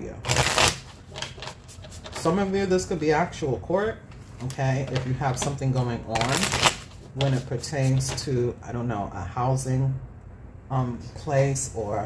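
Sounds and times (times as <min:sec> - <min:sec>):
cards riffling: 0:00.2 - 0:02.2, 0:06.1 - 0:08.2
cards rustling and flicking: 0:04.8 - 0:08.3.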